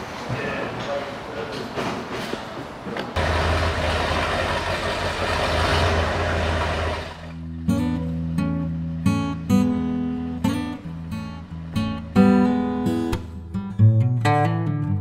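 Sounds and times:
fire truck engine rumbling: 0:03.2 - 0:07.5
acoustic guitar strumming: 0:07.3 - 0:15.0.

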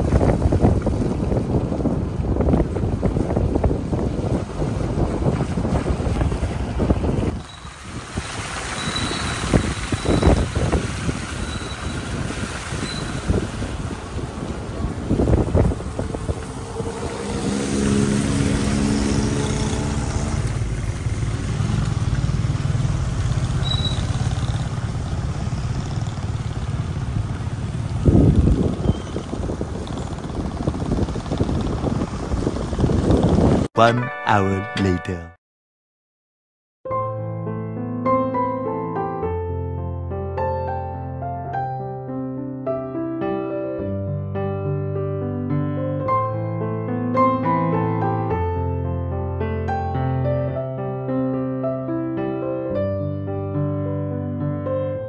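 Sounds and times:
road noise on wet road: 0:00.0 - 0:33.7
vehicle engine: 0:00.0 - 0:33.7
wind buffeting microphone: 0:00.0 - 0:33.7.

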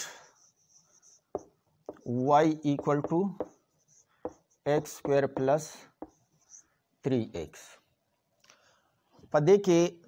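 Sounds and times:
marker pen scratching on whiteboard: 0:00.2 - 0:06.7.

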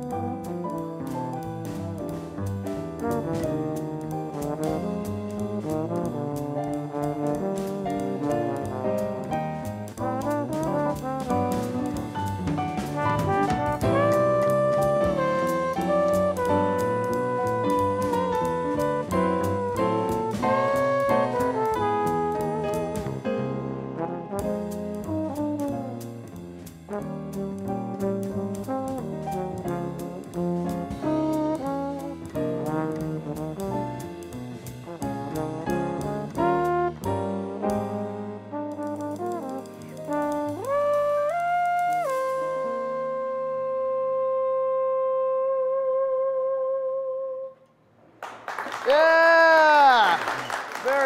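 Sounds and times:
jazz quartet playing: 0:00.0 - 0:47.6
applause and cheering: 0:48.2 - 0:51.0.

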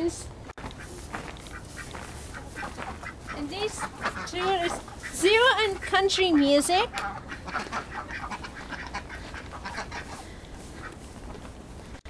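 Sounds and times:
hens clucking: 0:00.6 - 0:11.4.

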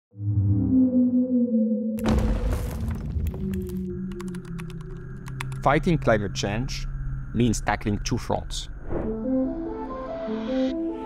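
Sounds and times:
low hum: 0:00.2 - 0:09.7.

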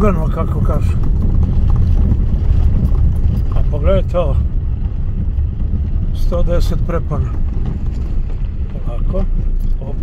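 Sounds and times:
car rumbling over rough road: 0:00.0 - 0:10.0.

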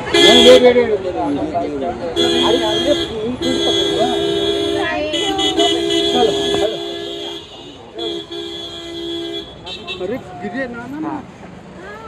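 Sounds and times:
vehicle horn honking: 0:00.0 - 0:00.9, 0:02.1 - 0:10.3.

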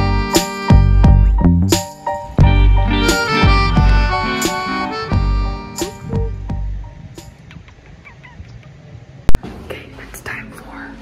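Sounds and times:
soft whispering: 0:09.6 - 0:11.0.

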